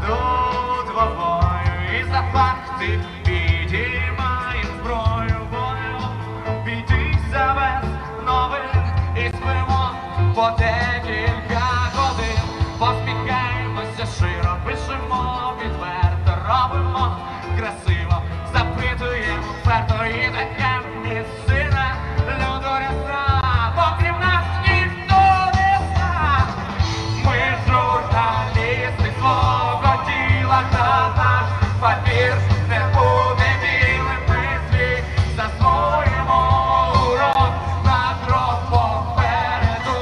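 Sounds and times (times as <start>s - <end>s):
person singing: 0.0s - 40.0s
steady bass line: 0.0s - 40.0s.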